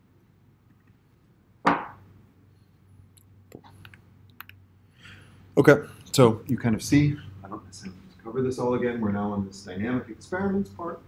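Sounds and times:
faint low hum: 0.0 - 11.0
sharp thump: 1.7 - 2.0.

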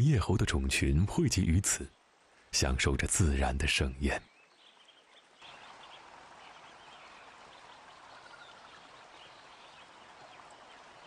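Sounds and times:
trickling dripping water: 0.1 - 11.0
faint bird chirps: 4.2 - 11.0.

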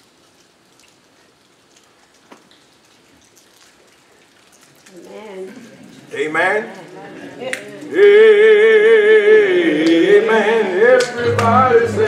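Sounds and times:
plastic cups crackling: 0.8 - 8.4.

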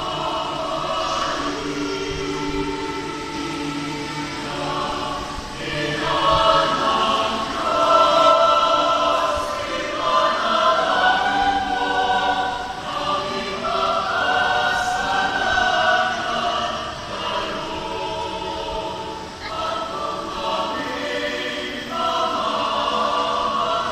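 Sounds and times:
mixed choir singing: 0.0 - 23.9.

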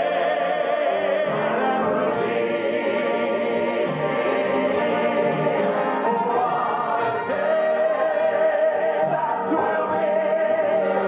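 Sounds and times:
male vocal quartet singing gospel: 0.0 - 11.0.

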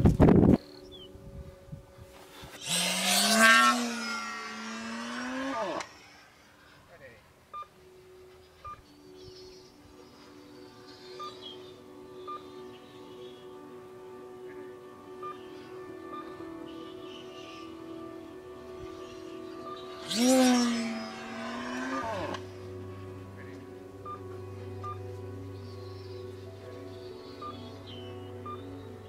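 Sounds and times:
steady background tones: 0.0 - 29.0
faint short beeps: 8.6 - 8.8.

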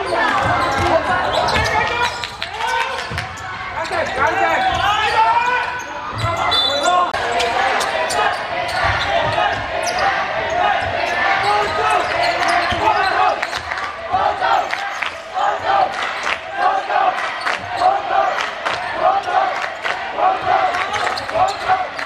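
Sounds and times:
voices calling out: 0.0 - 22.0
basketball bouncing on court floor: 0.3 - 1.8.

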